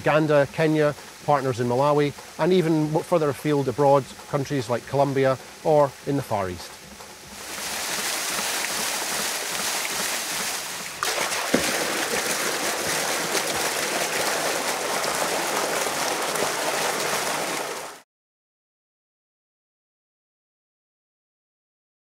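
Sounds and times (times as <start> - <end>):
water gushing into concrete tank: 0.0 - 6.3, 7.2 - 18.0.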